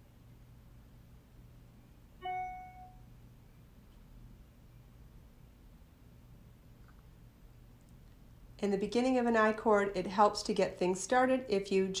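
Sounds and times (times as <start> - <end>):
short chime: 2.2 - 3.0.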